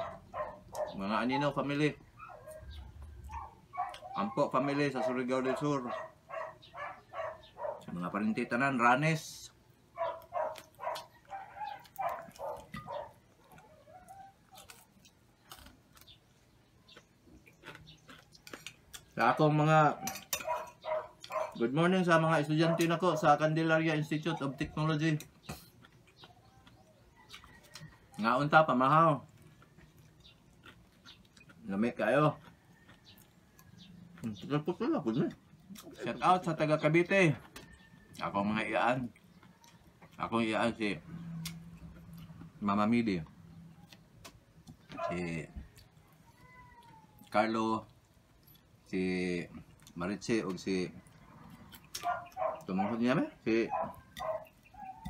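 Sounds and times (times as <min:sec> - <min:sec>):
dog whimpering: 0:10.0 - 0:14.6, 0:53.6 - 0:55.0.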